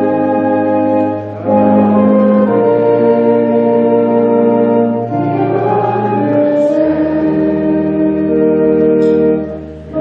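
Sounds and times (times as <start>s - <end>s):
choir singing: 0.0s - 10.0s
organ accompaniment: 0.0s - 10.0s.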